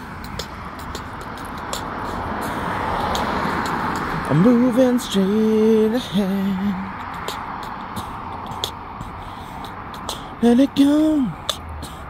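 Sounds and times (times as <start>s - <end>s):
car passing: 0.0s - 12.0s.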